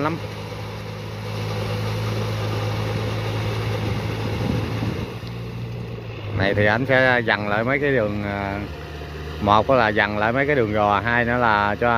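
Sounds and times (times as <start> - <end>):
tractor diesel engine running: 0.0 - 11.9.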